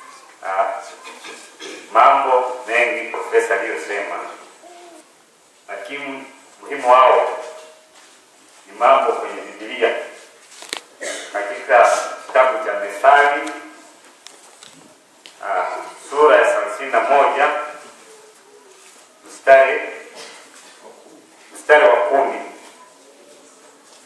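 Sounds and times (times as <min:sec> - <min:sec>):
man reading aloud: 0:00.0 - 0:04.6, 0:05.7 - 0:07.8, 0:08.6 - 0:10.3, 0:11.0 - 0:13.8, 0:15.4 - 0:17.9, 0:19.2 - 0:20.2, 0:20.8 - 0:22.7.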